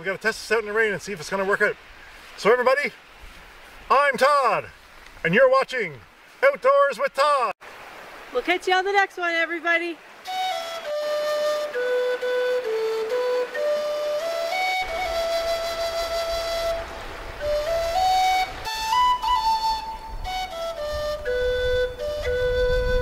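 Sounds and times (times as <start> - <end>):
slow melody of held notes: 10.2 - 23.0.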